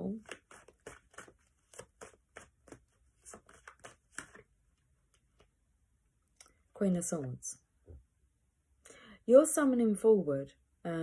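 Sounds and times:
cards being shuffled: 0:00.1 - 0:04.5.

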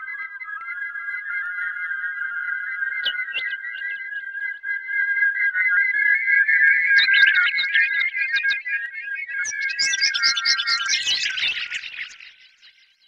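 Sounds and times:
chirping electronic blips: 0:00.0 - 0:08.8, 0:09.5 - 0:12.8.

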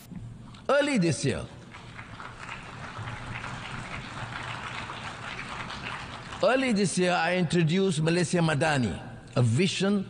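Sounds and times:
audience applauding: 0:01.6 - 0:06.9.

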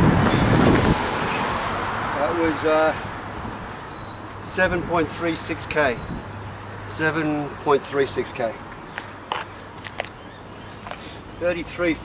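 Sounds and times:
wind on microphone: 0:00.0 - 0:01.6
road traffic hiss: 0:00.0 - 0:12.0.

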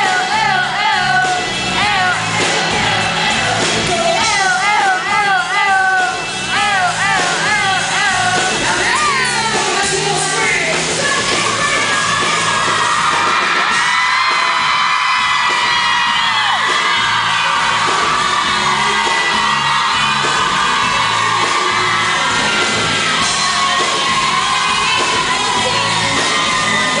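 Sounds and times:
person singing: 0:00.0 - 0:12.5
crowd whooping and yelling: 0:00.0 - 0:27.0
pop-rock band playing: 0:00.0 - 0:27.0
repeating bass line: 0:00.0 - 0:27.0.

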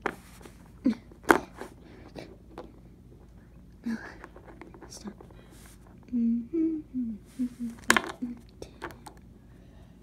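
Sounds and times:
young person humming: 0:06.0 - 0:08.4.

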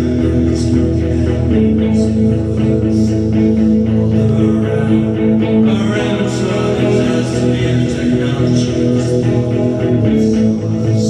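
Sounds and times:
electric guitar strumming chords: 0:00.0 - 0:11.0.

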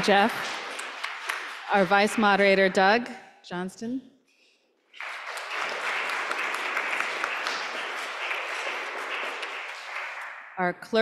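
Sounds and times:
congregation applauding: 0:00.0 - 0:02.6, 0:04.9 - 0:10.6.

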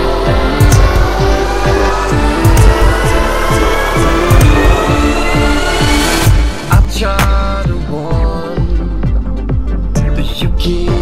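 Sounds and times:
electronic dubstep music: 0:00.0 - 0:11.0.

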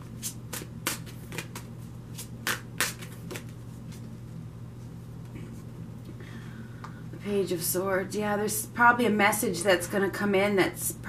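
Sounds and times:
cards being shuffled: 0:00.2 - 0:04.1.

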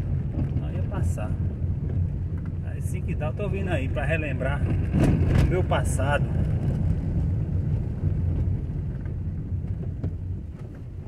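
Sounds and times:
vehicle driving on dirt road: 0:00.0 - 0:11.0.

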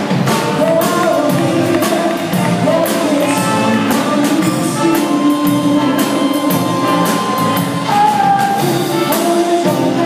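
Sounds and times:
dance band playing foxtrot: 0:00.0 - 0:10.0
drum kit: 0:00.0 - 0:10.0.

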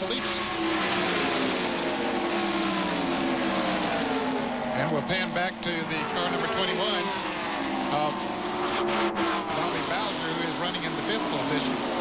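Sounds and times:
racing car engines passing: 0:00.0 - 0:12.0.

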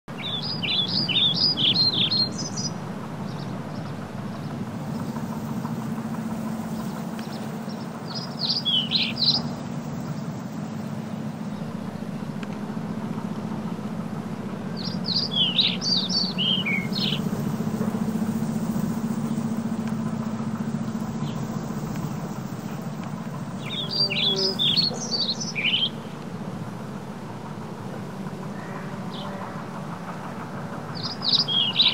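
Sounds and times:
steady low hum: 0:00.1 - 0:31.9
small bird chirping: 0:00.2 - 0:05.2, 0:06.7 - 0:10.8, 0:14.7 - 0:26.1, 0:31.0 - 0:31.9.

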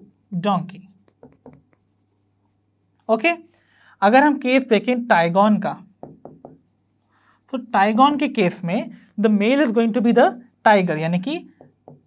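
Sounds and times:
marker pen writing on whiteboard: 0:00.0 - 0:02.9, 0:04.6 - 0:09.8, 0:11.0 - 0:12.0.

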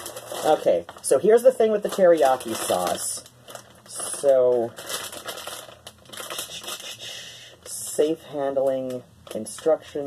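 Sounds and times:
plastic packaging crinkling: 0:00.0 - 0:10.0.

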